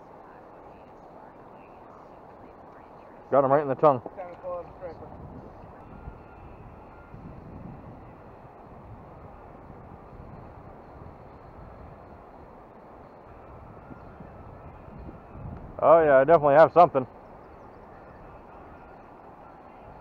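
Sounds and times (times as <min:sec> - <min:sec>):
river background noise: 0:00.0 - 0:20.0.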